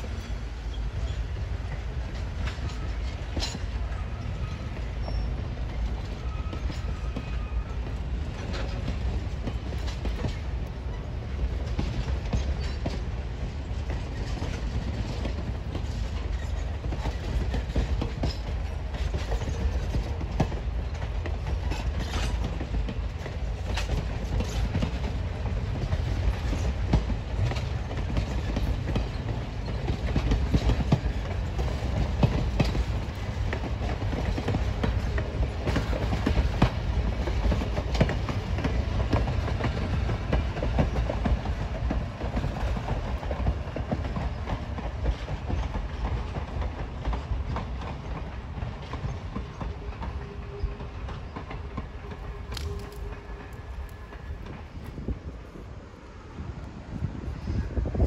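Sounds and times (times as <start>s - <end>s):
wheels clacking over rail joints: 0.0s - 55.7s
train coaches rumbling past: 0.0s - 58.0s.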